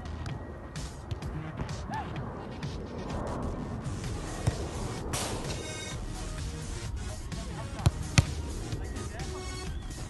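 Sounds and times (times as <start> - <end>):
football being kicked: 4.3 - 4.8, 7.8 - 8.6.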